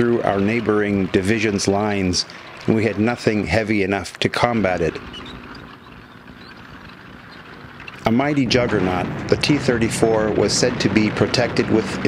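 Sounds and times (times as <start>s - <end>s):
tank rumbling and rattling: 0.0s - 12.0s.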